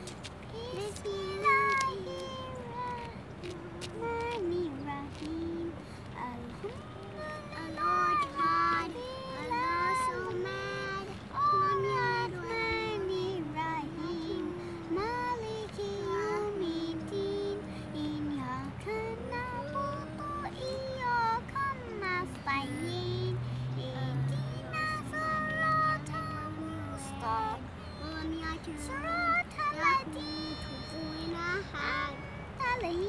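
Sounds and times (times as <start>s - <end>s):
child singing slow melody: 0.0s - 33.0s
girl chanting a prayer: 0.6s - 15.5s, 24.1s - 33.0s.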